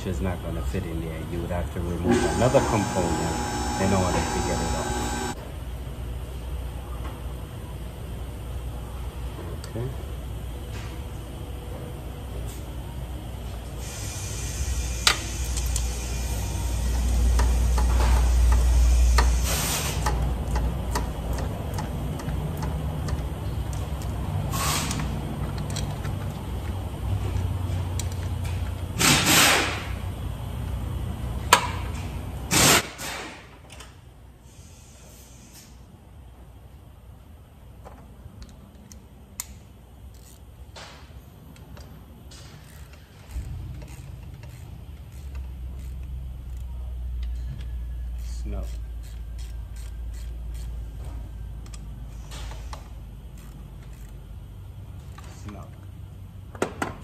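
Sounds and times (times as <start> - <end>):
low machine rumble: 2.0 - 5.4
air hiss bursts: 24.5 - 25.0, 34.4 - 35.7.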